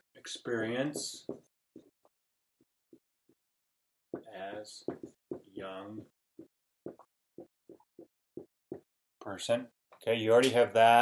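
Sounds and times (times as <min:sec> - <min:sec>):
marker writing on a whiteboard: 0:00.2 - 0:01.9, 0:04.2 - 0:05.6, 0:06.4 - 0:08.9.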